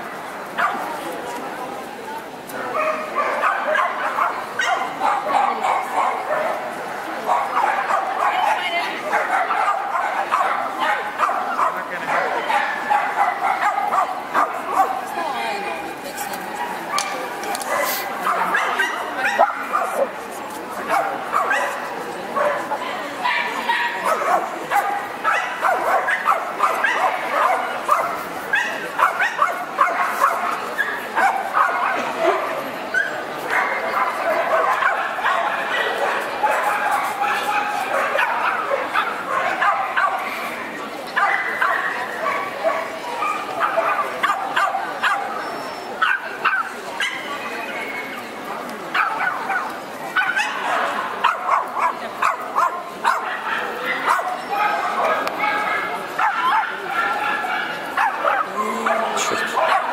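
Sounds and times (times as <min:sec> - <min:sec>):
murmur of people talking: 0:00.0 - 0:59.9
dogs barking and yipping: 0:02.8 - 0:15.2, 0:16.2 - 0:20.2, 0:20.8 - 0:40.4, 0:41.2 - 0:48.3, 0:48.9 - 0:59.9.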